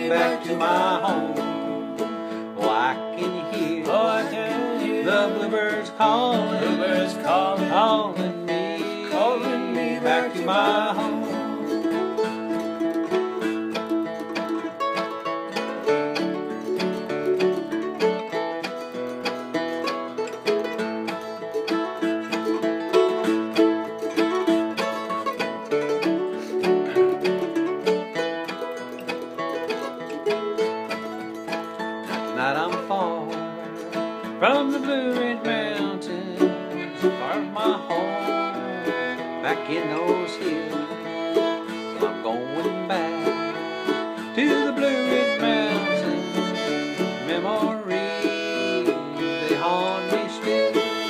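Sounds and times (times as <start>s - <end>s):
person singing: 0.0s - 18.8s, 20.2s - 51.0s
acoustic guitar picking melody: 0.0s - 51.0s.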